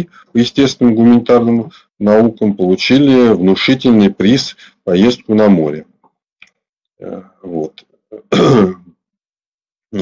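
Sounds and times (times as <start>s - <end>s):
man clearing his throat: 8.2s - 9.0s.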